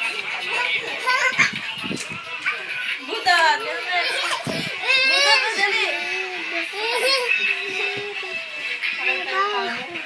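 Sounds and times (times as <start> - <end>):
voices in the room: 0.0 - 10.0
toddler chattering and laughing: 0.4 - 1.7, 4.0 - 8.4.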